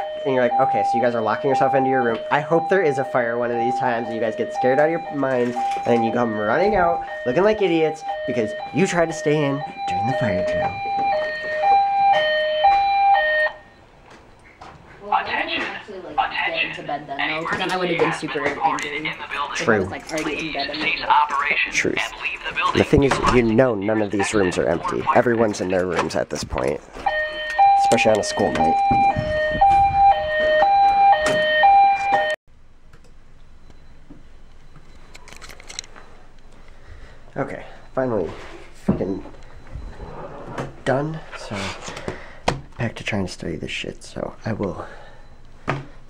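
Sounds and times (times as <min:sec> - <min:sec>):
fire alarm high-low tone: 0:00.0 - 0:13.9, 0:27.0 - 0:32.4.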